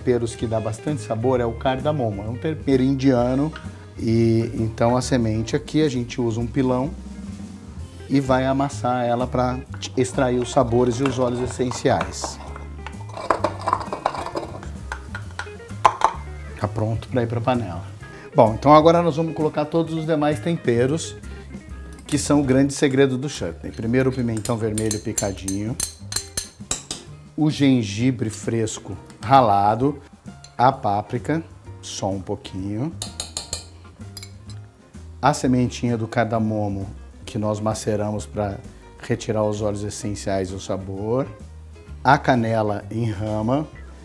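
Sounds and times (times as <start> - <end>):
background music: 0.0 - 44.0
pestle knocking in wooden mortar: 10.3 - 16.2
metal spoon clinking on pot: 10.4 - 16.2, 23.7 - 27.0, 33.0 - 34.6.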